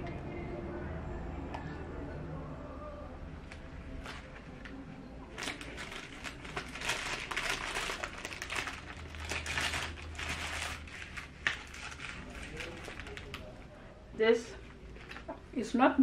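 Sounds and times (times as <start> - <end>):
foil wrapper crinkling: 5.3 - 13.6.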